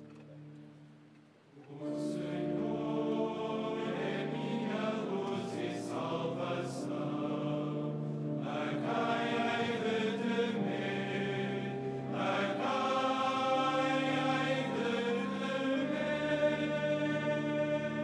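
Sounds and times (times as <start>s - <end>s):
male choir singing in harmony: 1.6s - 18.0s.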